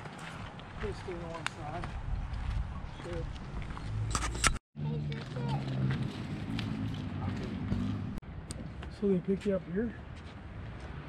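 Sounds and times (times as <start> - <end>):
footsteps crunching on dirt: 0.0 - 8.1.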